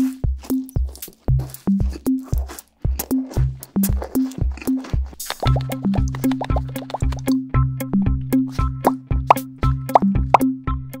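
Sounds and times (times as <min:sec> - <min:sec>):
bouncy bass line: 0:01.3 - 0:10.9.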